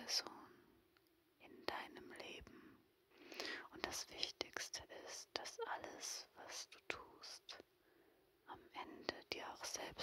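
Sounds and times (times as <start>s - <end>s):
woman whispering: 0.0s - 0.6s, 1.4s - 2.8s, 3.4s - 7.7s, 8.5s - 10.0s.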